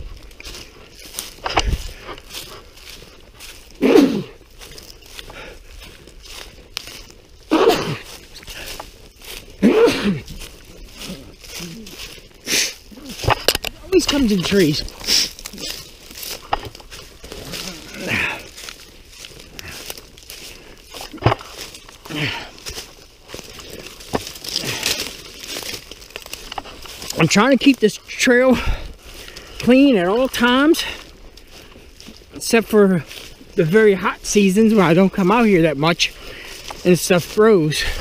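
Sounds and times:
footsteps crunching dry leaves: 0:00.0 - 0:38.0
person coughing: 0:03.8 - 0:04.4, 0:07.5 - 0:08.1, 0:09.6 - 0:10.3
grunt or breath: 0:09.5 - 0:13.4, 0:17.2 - 0:22.9, 0:24.5 - 0:25.2.

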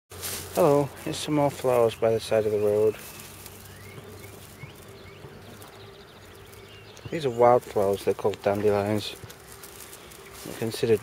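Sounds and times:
steady low hum: 0:00.1 - 0:11.0
faint bird chirps: 0:01.7 - 0:11.0.

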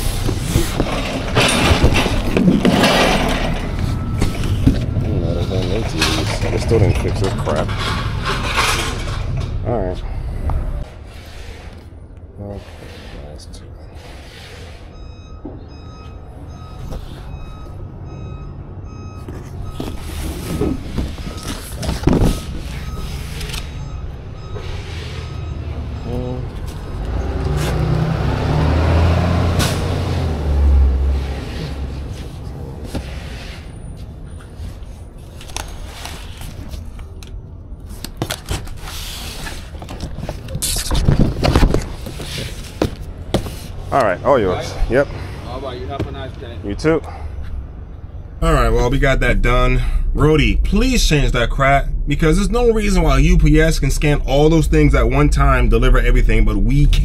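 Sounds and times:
heavy vehicle engines rumbling: 0:00.0 - 0:57.0
high beeps: 0:14.9 - 0:21.6, 0:22.3 - 0:26.4.

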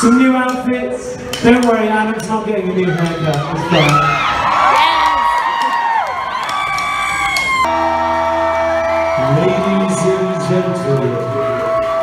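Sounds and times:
crowd cheering and whooping: 0:00.0 - 0:00.6, 0:02.7 - 0:12.0
amplified band holding chord: 0:07.7 - 0:12.0.

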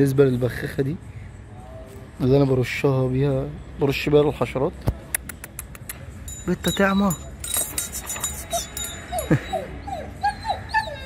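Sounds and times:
puppy whimpering: 0:07.6 - 0:11.0.

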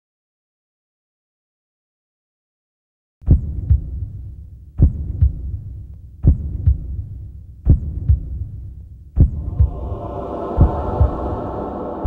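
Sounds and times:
heartbeat thumps: 0:03.2 - 0:11.5
low rumble: 0:09.2 - 0:12.0
sustained drone: 0:09.4 - 0:12.0.

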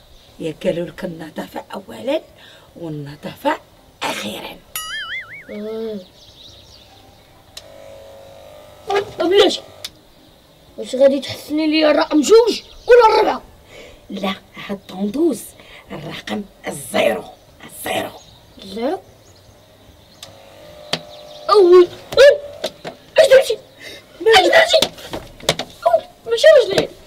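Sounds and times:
hair clipper switch click: 0:07.6 - 0:08.0, 0:08.9 - 0:10.0, 0:20.2 - 0:21.2
hair clippers buzzing: 0:07.6 - 0:10.0, 0:20.2 - 0:23.0.

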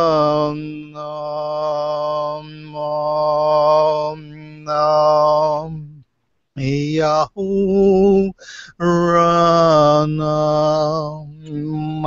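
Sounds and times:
wordless chant: 0:00.0 - 0:12.0.

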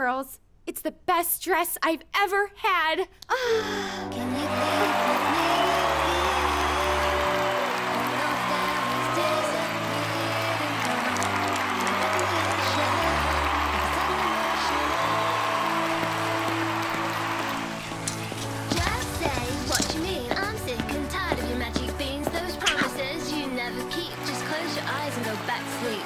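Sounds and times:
background music with slow bass: 0:03.5 - 0:26.0.

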